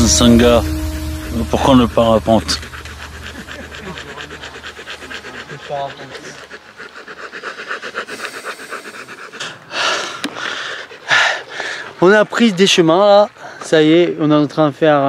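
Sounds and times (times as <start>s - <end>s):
dog panting: 2.4s - 13.7s.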